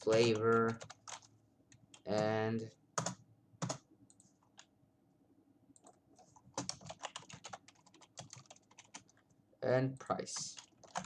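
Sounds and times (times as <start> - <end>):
computer keyboard typing: 0.0 - 2.4, 3.0 - 4.7, 5.8 - 9.3, 10.3 - 11.0.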